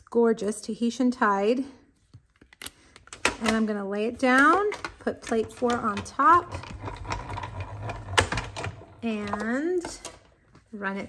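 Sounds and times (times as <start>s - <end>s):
plastic plates clicking and knocking: 3.0s - 10.3s.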